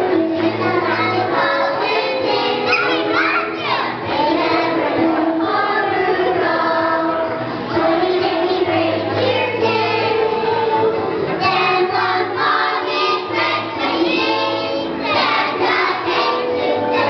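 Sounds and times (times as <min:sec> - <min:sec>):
children's choir singing: 0:00.0 - 0:17.0
musical accompaniment: 0:00.0 - 0:17.0.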